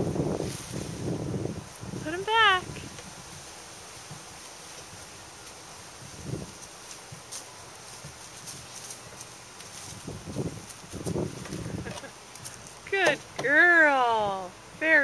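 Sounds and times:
small footsteps in bark mulch: 0:00.0 - 0:13.8.

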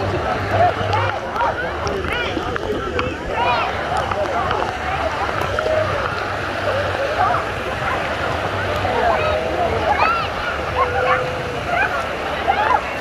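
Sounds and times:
indistinct voices: 0:00.0 - 0:13.0.

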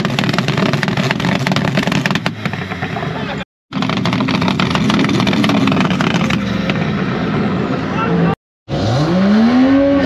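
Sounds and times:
crackling exhaust pops: 0:00.0 - 0:03.0
car engine at high revs: 0:08.7 - 0:10.0.

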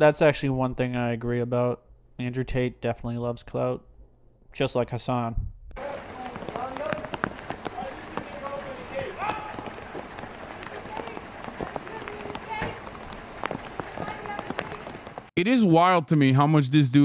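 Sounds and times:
footsteps of several people: 0:05.8 - 0:15.3.

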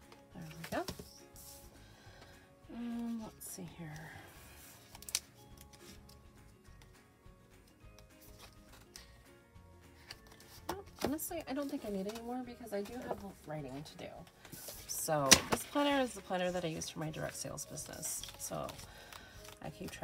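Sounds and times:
soft background music: 0:00.0 - 0:20.0
paper sheets handled: 0:17.2 - 0:20.0.

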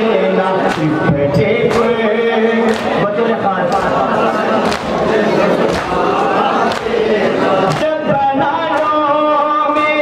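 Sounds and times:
men chanting a lament: 0:00.0 - 0:10.0
hands slapping chests: 0:02.6 - 0:03.0, 0:03.6 - 0:07.9.

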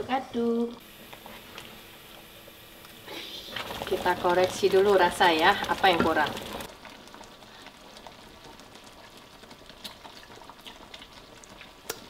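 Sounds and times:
broth bubbling in a wok: 0:00.8 - 0:12.0.

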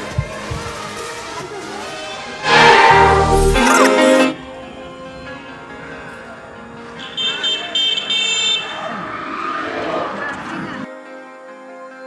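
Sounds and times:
street traffic noise: 0:00.0 - 0:10.9
vehicle horn honking: 0:02.4 - 0:04.3, 0:07.0 - 0:08.8.

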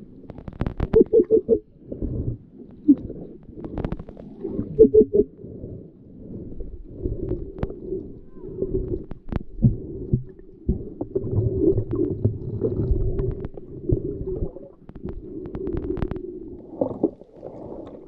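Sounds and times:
underwater rumble and gurgle: 0:00.0 - 0:18.0.

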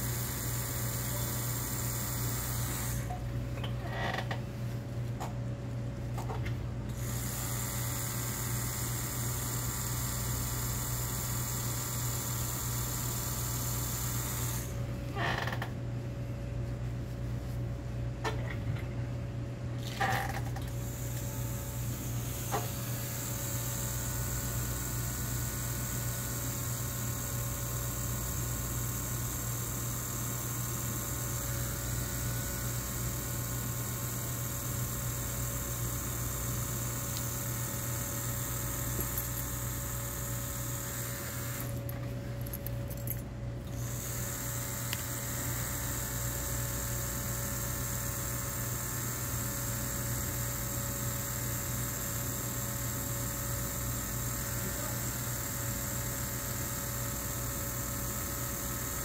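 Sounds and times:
tattoo machine buzzing: 0:00.0 - 0:03.2, 0:03.8 - 0:04.4, 0:06.9 - 0:15.8, 0:19.8 - 0:59.0.

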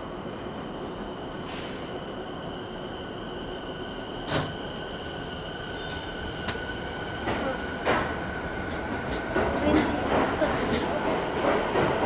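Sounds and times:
train running rumble: 0:00.0 - 0:12.0.

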